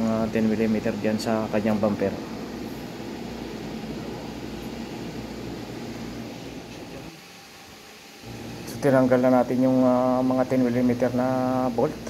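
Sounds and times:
fan humming: 0:00.0 - 0:12.0.

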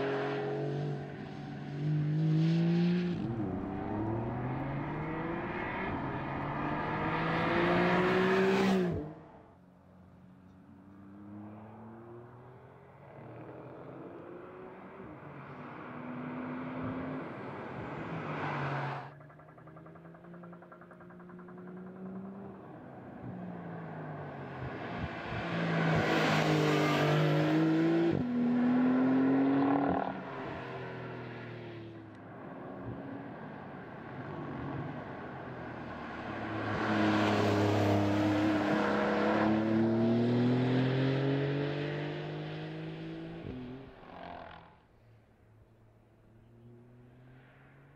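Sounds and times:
sports car engine accelerating: 0:00.0 - 0:09.4, 0:10.4 - 0:44.9.

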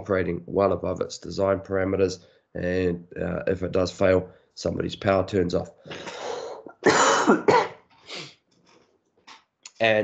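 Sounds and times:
man coughing: 0:05.9 - 0:08.3.

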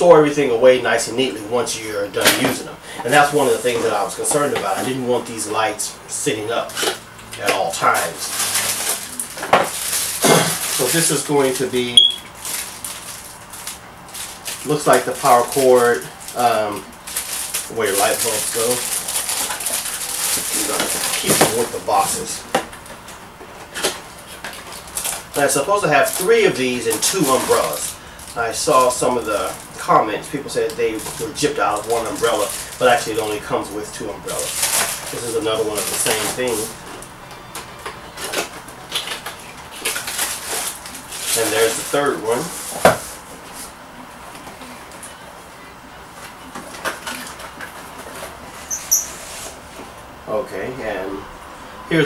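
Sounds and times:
cardboard and paper rustling: 0:06.6 - 0:45.2, 0:46.2 - 0:50.0
high squeak: 0:48.6 - 0:49.3.

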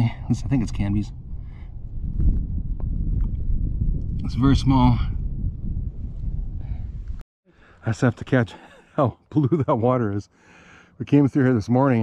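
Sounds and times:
wind buffeting microphone: 0:00.0 - 0:07.2.

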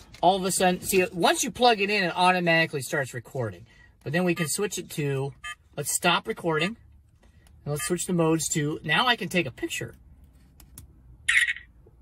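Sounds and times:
electronic camera shutter: 0:11.3 - 0:11.7.

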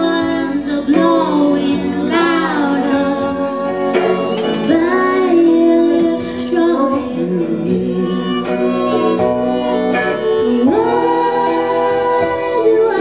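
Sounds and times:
country band playing: 0:00.0 - 0:13.0
drums: 0:00.0 - 0:13.0
electric guitars: 0:00.0 - 0:13.0
woman singing: 0:00.0 - 0:13.0.

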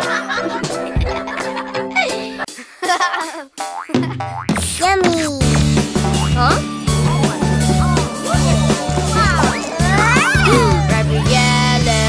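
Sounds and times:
children's music: 0:00.0 - 0:12.0
cartoon boing: 0:03.7 - 0:04.6.

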